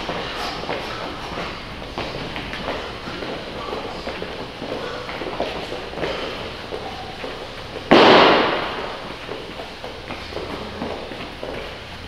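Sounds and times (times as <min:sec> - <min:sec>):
shuffling footsteps: 0:00.0 - 0:12.0.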